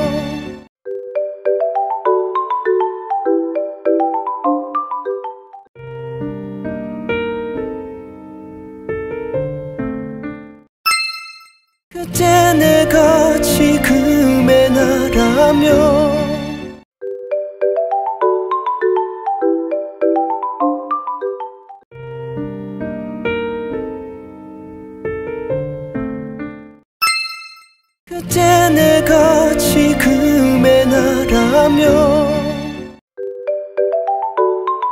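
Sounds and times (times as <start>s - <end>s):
piano music: 5.8s - 10.7s, 12.1s - 16.8s, 21.9s - 26.8s, 28.2s - 33.0s
bright ding chime: 27.0s - 27.9s.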